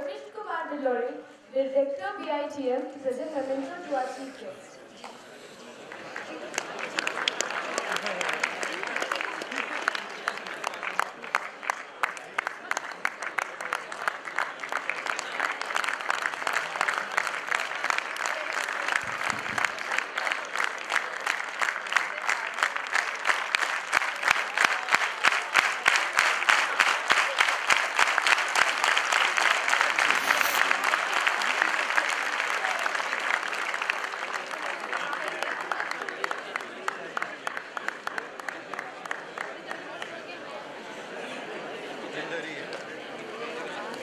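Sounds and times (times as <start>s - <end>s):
audience applauding: 5.6s - 40.4s.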